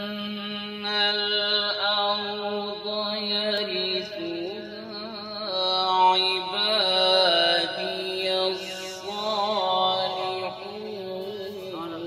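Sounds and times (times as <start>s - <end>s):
man chanting through a microphone: 0.0s - 12.0s.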